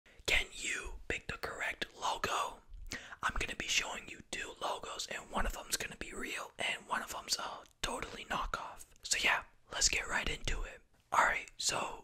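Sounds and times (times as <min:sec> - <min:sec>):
man whispering: 0:00.1 - 0:12.0.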